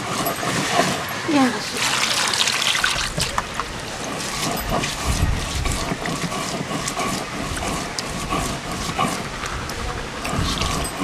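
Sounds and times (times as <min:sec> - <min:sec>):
water splashing in plastic basin: 0:01.8 - 0:03.5.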